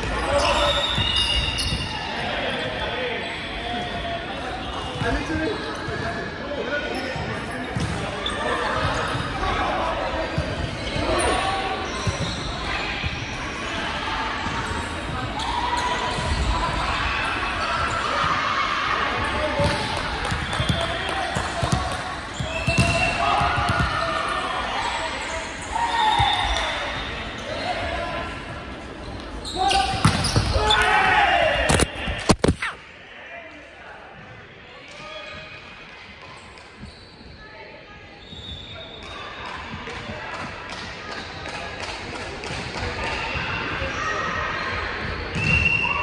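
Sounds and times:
sharp hits of volleyball: 0:29.8 - 0:30.8, 0:31.6 - 0:32.8.

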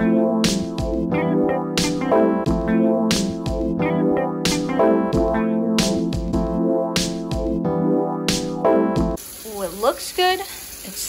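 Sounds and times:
background music with a beat: 0:00.0 - 0:09.2
sauce sizzling in a skillet: 0:09.2 - 0:11.0.

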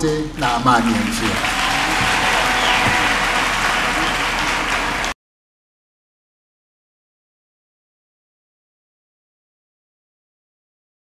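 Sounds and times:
large audience applauding: 0:00.4 - 0:05.2.

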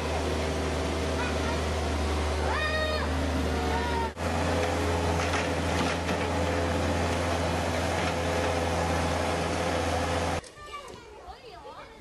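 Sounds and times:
machine humming: 0:00.0 - 0:10.4.

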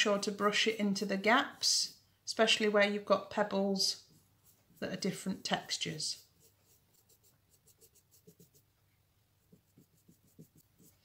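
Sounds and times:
paintbrush scratching on pebble: 0:00.0 - 0:02.0, 0:03.8 - 0:08.7, 0:09.4 - 0:11.0.

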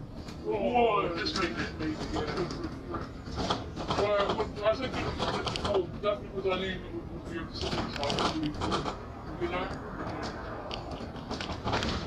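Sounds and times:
bus engine and road rumble: 0:00.0 - 0:12.0
passengers talking: 0:00.0 - 0:12.0.

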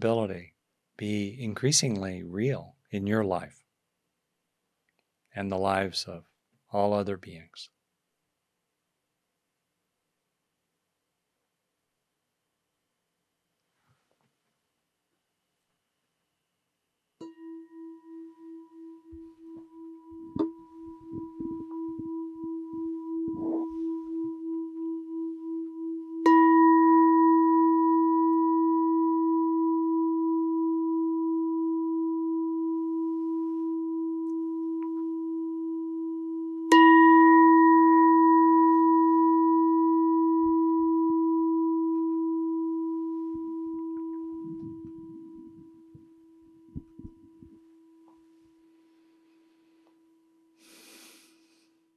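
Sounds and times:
meditation bell ringing: 0:17.2 - 0:49.3.

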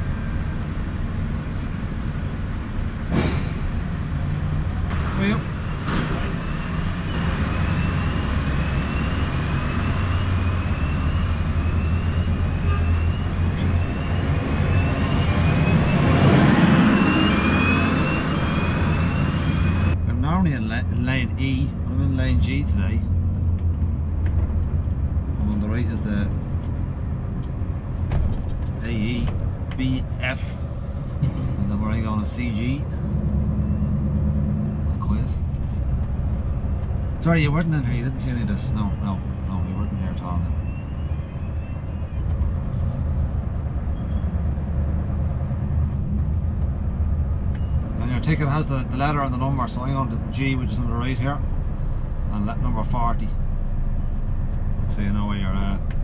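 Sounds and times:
truck engine drone: 0:00.0 - 0:56.0
rushing noise with rising chirp: 0:06.4 - 0:20.0.

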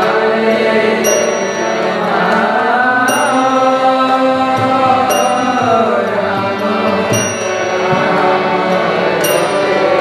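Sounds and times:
harmonium drone: 0:00.0 - 0:10.0
sung mantra: 0:00.0 - 0:10.0.

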